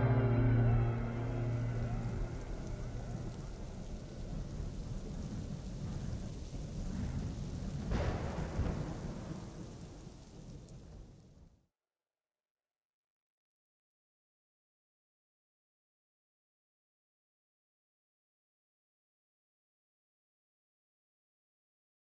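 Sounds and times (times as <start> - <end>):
music: 0.0 - 3.7
rain hissing: 0.0 - 11.1
thunder rumbling: 0.0 - 11.5.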